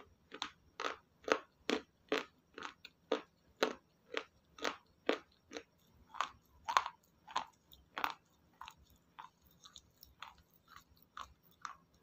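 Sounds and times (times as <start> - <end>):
crisp crunching of salad chewing: 0.0 - 12.0.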